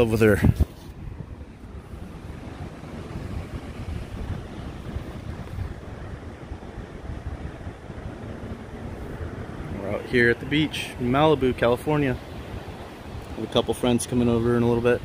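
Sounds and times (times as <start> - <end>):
ocean surf washing: 0.0 - 15.0
wind buffeting microphone: 0.0 - 15.0.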